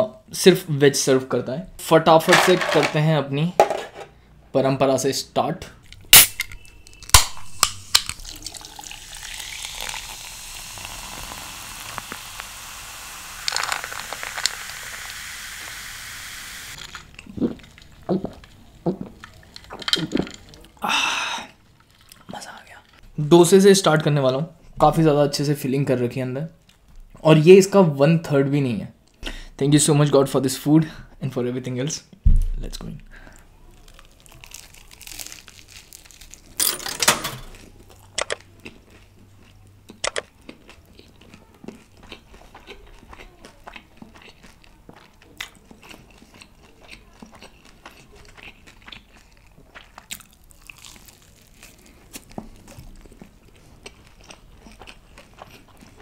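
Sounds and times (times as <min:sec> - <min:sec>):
crunchy food being chewed: 0:05.8 - 0:15.2, 0:16.7 - 0:20.8, 0:21.7 - 0:23.0, 0:33.3 - 0:36.6, 0:37.5 - 0:56.0
can snapping open: 0:05.9 - 0:10.2, 0:11.8 - 0:12.5, 0:13.4 - 0:14.7
cola fizzing over ice: 0:07.6 - 0:17.1.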